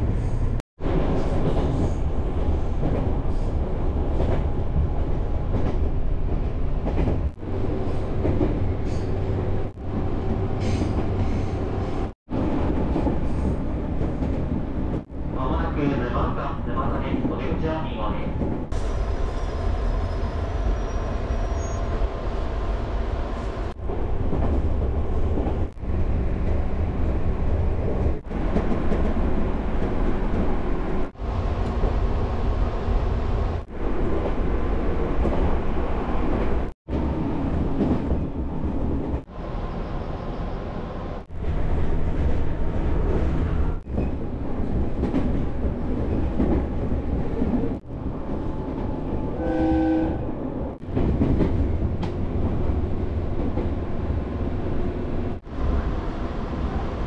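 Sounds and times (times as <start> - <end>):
train wheels rumbling on rail: 0.0 - 57.0
train horn note: 49.3 - 50.3.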